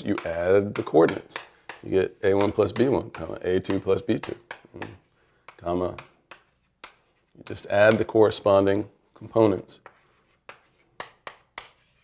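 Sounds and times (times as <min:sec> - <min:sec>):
pen strokes writing: 0:04.5 - 0:07.4, 0:09.8 - 0:12.0.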